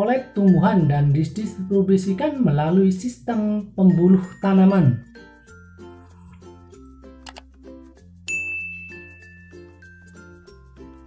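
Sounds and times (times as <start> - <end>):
light background music: 0.0 - 11.0
bright bell ding: 8.3 - 9.8.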